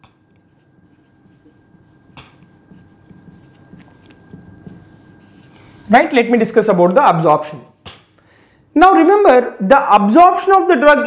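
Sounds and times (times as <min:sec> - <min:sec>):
marker scratching on whiteboard: 0:00.0 - 0:05.7.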